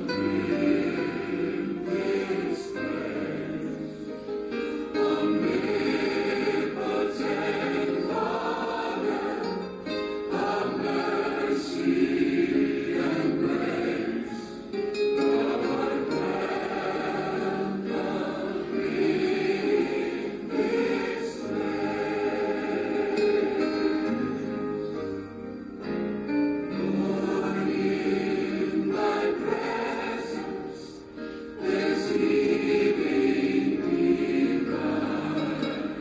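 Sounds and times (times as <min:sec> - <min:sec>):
voices singing worship song: 0:00.0 - 0:24.6, 0:26.7 - 0:36.0.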